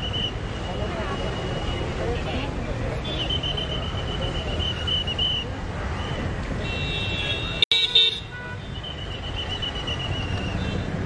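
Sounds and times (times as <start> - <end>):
crowd noise: 0.0 - 11.0
slow-moving traffic: 0.0 - 11.0
trilling whistle: 3.1 - 6.2, 8.7 - 10.8
vehicle horn tooting: 6.6 - 8.8.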